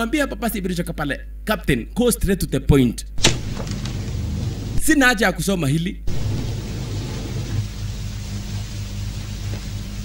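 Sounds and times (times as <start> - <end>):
even hiss: 3.2 - 5.3, 6.1 - 10.0.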